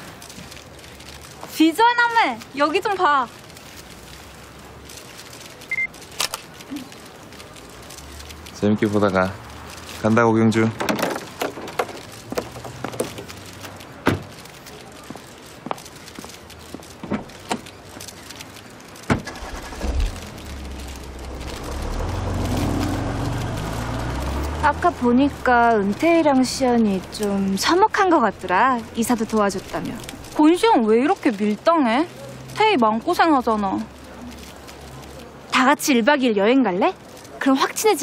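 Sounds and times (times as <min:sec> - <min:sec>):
smartphone camera beep: 0:05.7 - 0:05.9
car engine starting and rumbling: 0:19.1 - 0:30.3.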